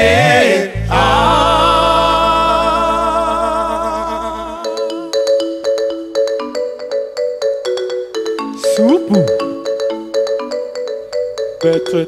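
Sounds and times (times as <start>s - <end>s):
rumba band music: 8.4s - 9.7s.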